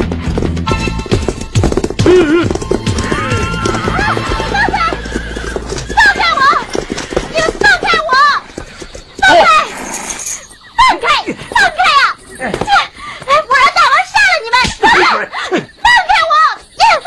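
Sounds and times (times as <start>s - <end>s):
horses galloping: 0.0s - 17.0s
horses whinnying: 0.4s - 13.7s
riders shouting: 2.2s - 8.6s.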